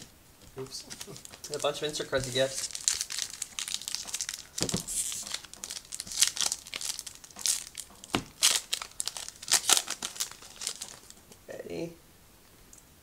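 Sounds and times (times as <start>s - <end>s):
wrapper crackling and rustling: 0.0s - 11.4s
wrapper ripping: 0.6s - 11.2s.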